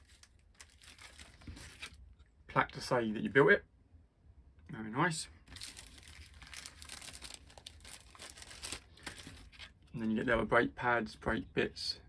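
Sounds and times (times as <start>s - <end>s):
packaging crinkling and rustling: 0.0s - 2.0s, 5.5s - 9.8s.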